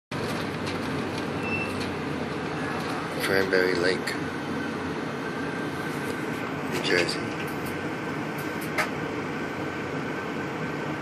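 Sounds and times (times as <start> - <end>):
car road and engine noise: 0.1 - 11.0.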